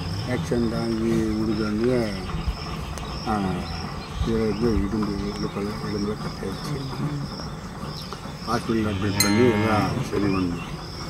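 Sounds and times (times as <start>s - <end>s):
calf mooing: 9.0s - 10.3s.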